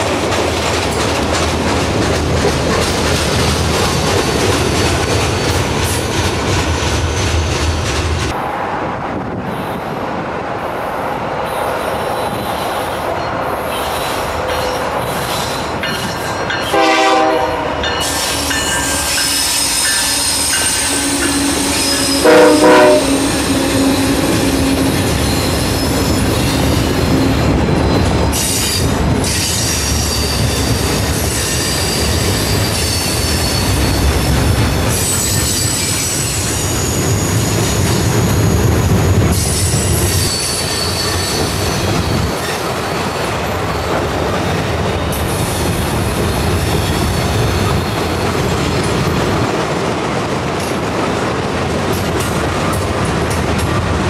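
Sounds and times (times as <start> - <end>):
train wheels rumbling on rail: 0.0 - 54.0
loud train horn: 16.7 - 25.4
high-pitched wheel squeal: 18.0 - 34.1, 34.9 - 37.8, 39.4 - 43.3.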